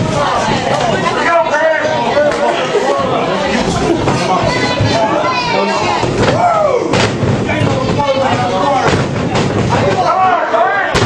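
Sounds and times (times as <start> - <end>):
wrestlers hitting the mat: 3.0 - 11.0.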